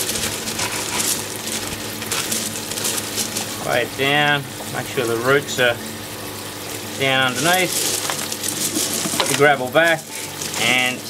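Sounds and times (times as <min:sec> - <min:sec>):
hands scraping gravel: 0:00.0 - 0:03.8, 0:07.0 - 0:11.0
water running steadily: 0:00.0 - 0:11.0.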